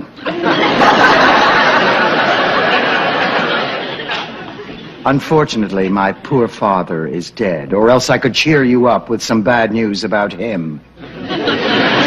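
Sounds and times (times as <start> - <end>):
audience laughing: 0.0 - 5.0, 11.0 - 12.0.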